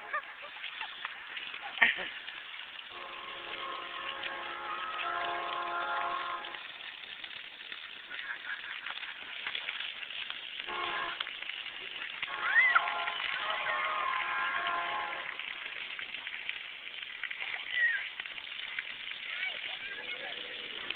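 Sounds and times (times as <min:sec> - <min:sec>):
water jets spraying: 0:00.0 - 0:20.9.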